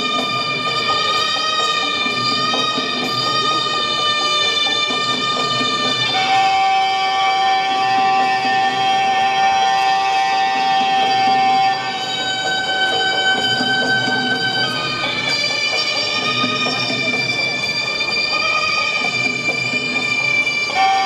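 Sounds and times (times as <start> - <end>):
reedy oboe-like pipe playing: 0.0 - 21.0.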